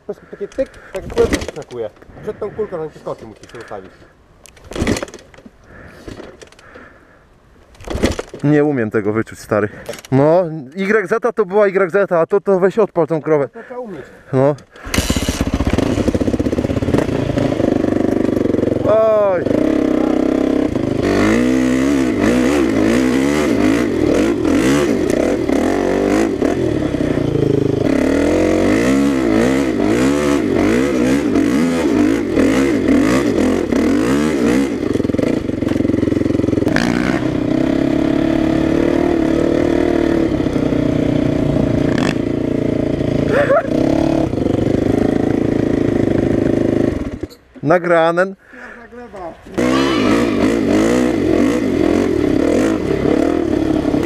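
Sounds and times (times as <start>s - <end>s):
dirt bike engine revving: 14.8s - 47.4s, 49.4s - 54.0s.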